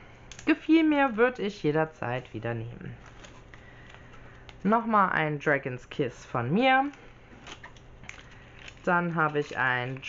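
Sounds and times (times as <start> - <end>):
plastic pack rustling and clicking: 3.0 - 4.6, 6.8 - 10.0.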